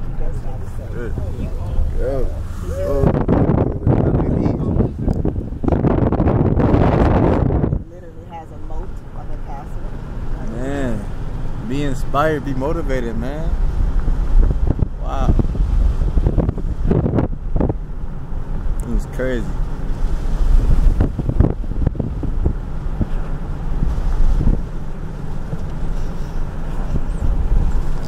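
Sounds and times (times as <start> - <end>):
wind buffeting microphone: 0.0 - 10.3, 11.2 - 28.0.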